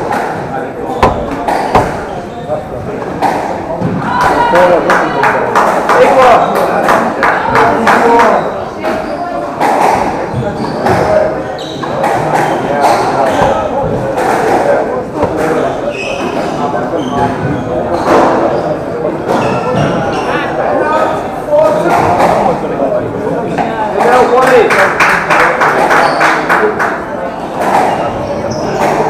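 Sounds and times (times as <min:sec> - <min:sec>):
squash ball hitting rackets and walls: 0:00.0 - 0:18.6, 0:21.7 - 0:22.6, 0:27.5 - 0:29.0
spectators chatting: 0:00.0 - 0:29.0.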